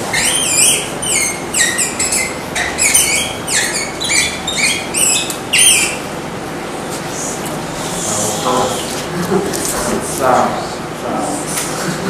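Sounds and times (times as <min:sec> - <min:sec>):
marker squeaking on whiteboard: 0:00.0 - 0:06.2, 0:07.0 - 0:09.7.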